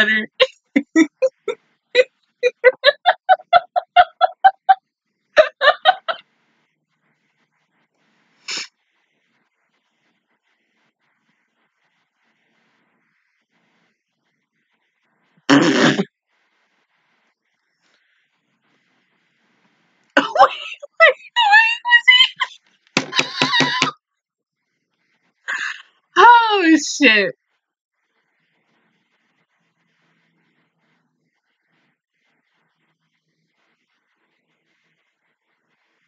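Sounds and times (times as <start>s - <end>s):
woman laughing: 0.0s - 4.8s, 5.4s - 6.2s, 20.2s - 23.9s, 25.5s - 26.8s
sharp burst of breath: 8.5s - 8.7s
high-pitched animated voice dialogue: 20.2s - 23.9s, 26.2s - 27.3s.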